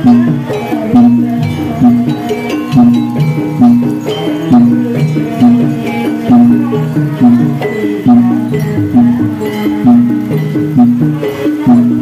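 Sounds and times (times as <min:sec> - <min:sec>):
drum strokes: 0:00.0 - 0:12.0
pitched percussion melody: 0:00.0 - 0:12.0.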